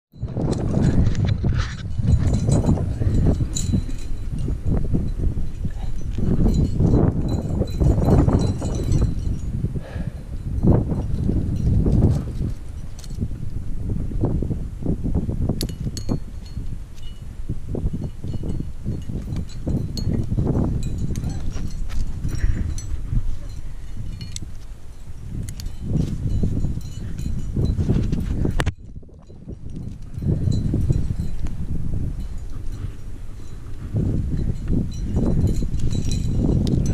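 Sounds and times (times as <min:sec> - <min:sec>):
climbing hardware jingling: 0:00.1 - 0:13.7, 0:15.2 - 0:36.9
wind buffeting microphone: 0:00.1 - 0:36.9.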